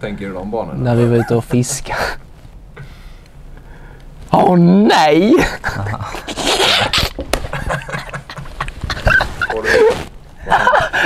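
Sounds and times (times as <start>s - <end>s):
men laughing: 1.0s - 2.2s, 5.3s - 11.0s
pitched giggles: 5.4s - 11.0s.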